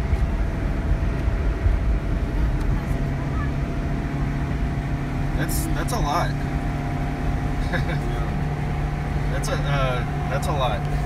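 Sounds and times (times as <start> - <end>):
car driving on highway: 0.0 - 11.0.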